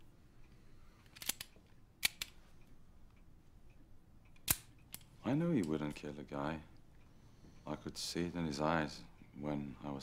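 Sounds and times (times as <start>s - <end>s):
handgun metal clicks: 1.0s - 2.4s, 4.2s - 5.8s.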